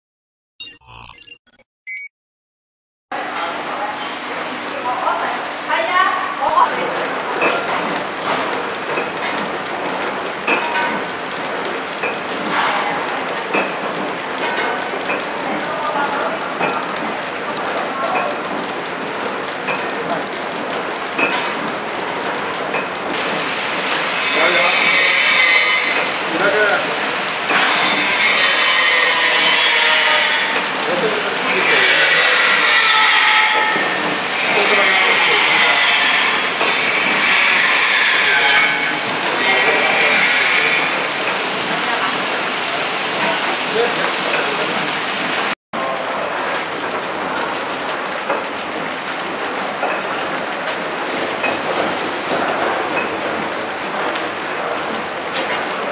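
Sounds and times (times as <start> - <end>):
packing machines running: 5.7 - 55.9.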